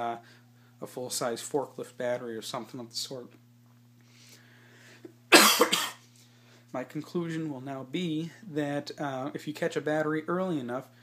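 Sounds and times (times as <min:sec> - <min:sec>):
man coughing: 0:05.3 - 0:06.0.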